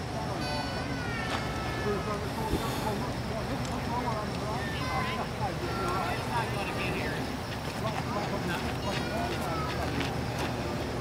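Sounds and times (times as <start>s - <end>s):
distant people talking: 0.0s - 11.0s.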